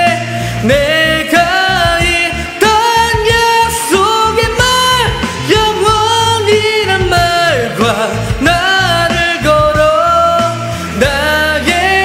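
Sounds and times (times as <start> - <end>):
rock ballad backing track: 0.0 - 12.0.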